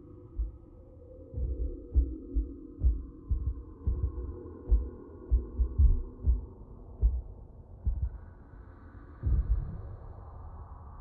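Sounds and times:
deep heartbeat-like thuds: 0.3 - 0.6, 1.4 - 8.2, 9.2 - 9.8.

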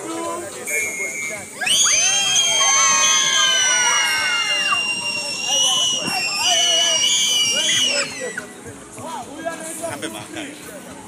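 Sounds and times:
children shrieking and shouting: 1.6 - 8.5.

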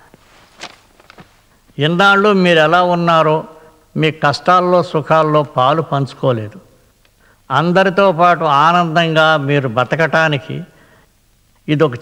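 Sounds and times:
soft footsteps and shuffles: 0.0 - 1.8
man speaking: 1.8 - 6.7, 7.5 - 10.8, 11.7 - 12.0.

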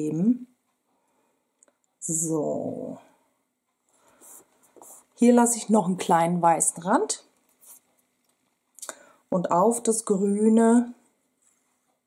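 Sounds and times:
fingertips rubbing on paper: 7.5 - 8.0.

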